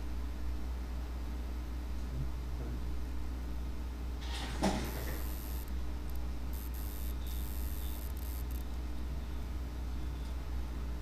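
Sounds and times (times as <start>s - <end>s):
microphone hum and hiss: 2.0s - 8.9s.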